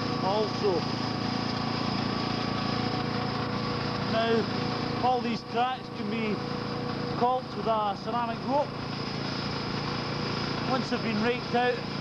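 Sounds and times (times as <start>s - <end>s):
steady mechanical drone: 0.0s - 12.0s.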